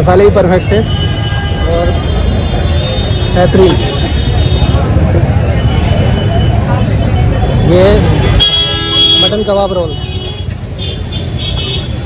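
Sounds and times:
background chatter: 0:00.0 - 0:12.0
road traffic rumble: 0:00.0 - 0:12.0.

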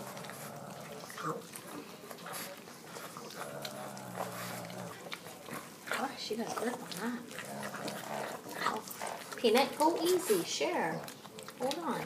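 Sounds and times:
animals chewing corn cob: 0:00.0 - 0:12.0.

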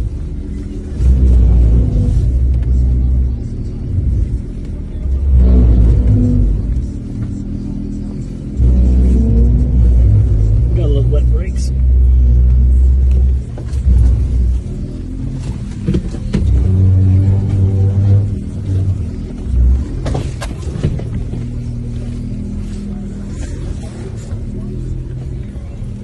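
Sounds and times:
car engine rumbling: 0:00.0 - 0:26.0.

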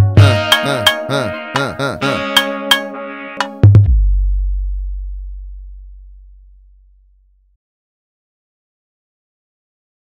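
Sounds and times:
deep electronic bass note: 0:03.6 - 0:07.6.

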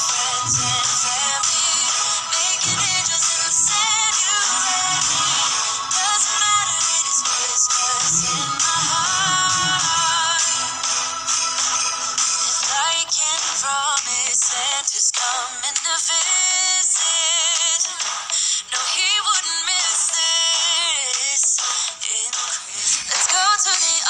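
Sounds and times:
person singing with gliding pitch: 0:00.0 - 0:14.5
background music: 0:00.0 - 0:24.0.

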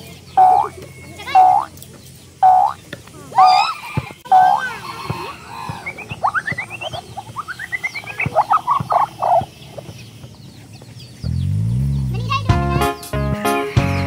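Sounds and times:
short chattering calls: 0:00.0 - 0:12.4
comic croaking call: 0:00.4 - 0:01.7, 0:02.4 - 0:04.9, 0:05.5 - 0:09.4.

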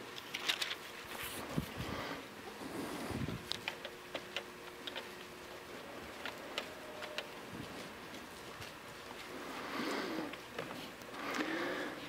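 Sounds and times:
pages being leafed through: 0:00.0 - 0:01.8, 0:03.5 - 0:11.6.

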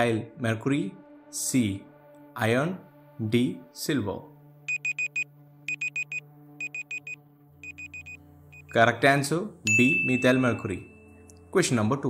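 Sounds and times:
timer beeping: 0:04.7 - 0:08.8.

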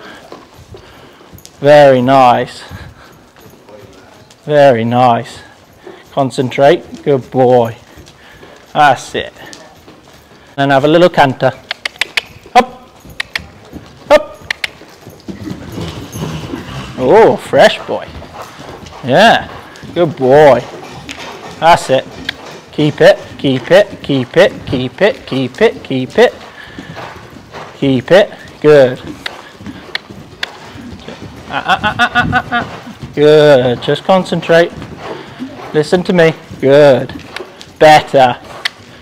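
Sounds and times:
horse cantering on sand: 0:00.0 - 0:39.0.

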